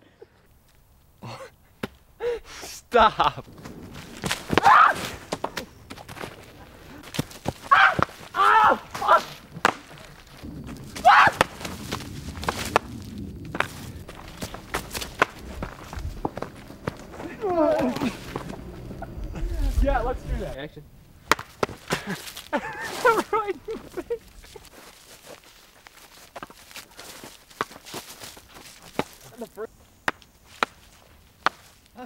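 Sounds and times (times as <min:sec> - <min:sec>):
men laughing and calling out: 0:01.2 - 0:03.6, 0:15.4 - 0:20.8, 0:21.8 - 0:24.8, 0:29.2 - 0:29.7.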